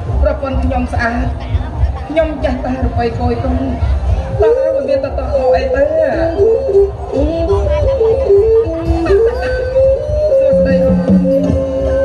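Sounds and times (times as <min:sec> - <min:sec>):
low musical accompaniment: 0:00.0 - 0:12.0.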